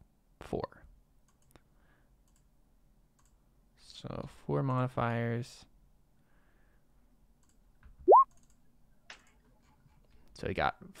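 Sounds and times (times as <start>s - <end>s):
electronic blip rising in pitch: 8.1s - 8.3s.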